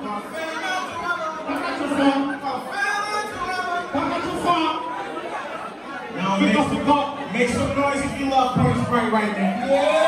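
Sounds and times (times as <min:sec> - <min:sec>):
echoing crowd chatter: 0:00.0 - 0:10.0.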